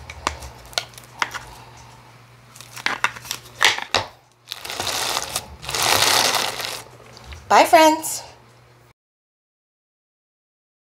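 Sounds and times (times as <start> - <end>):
crunchy slime crackling: 4.4 - 7.4.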